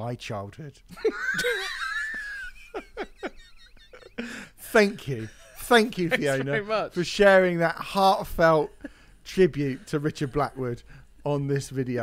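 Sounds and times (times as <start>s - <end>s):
men laughing hard: 0.9s - 4.6s, 5.2s - 6.7s
gasping breaths: 4.2s - 4.6s.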